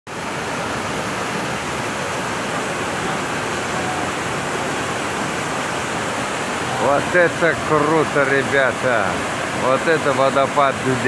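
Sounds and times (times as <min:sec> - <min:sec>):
waterfall rushing: 0:00.1 - 0:11.0.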